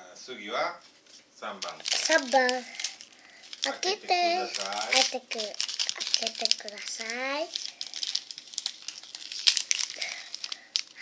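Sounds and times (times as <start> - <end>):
plastic and foil packets crinkling: 1.5 - 11.0.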